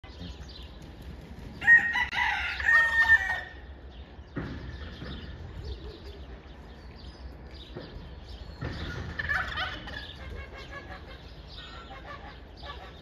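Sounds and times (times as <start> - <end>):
rooster crowing: 1.6 - 3.6.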